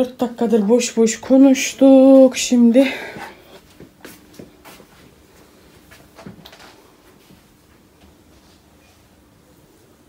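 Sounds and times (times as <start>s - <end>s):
footsteps on laminate floor: 3.1s - 6.5s.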